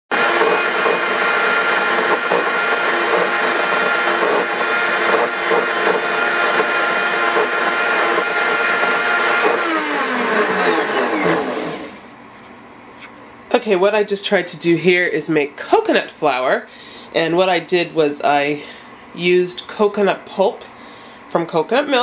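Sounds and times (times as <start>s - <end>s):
blender grinding: 0.1s - 12.1s.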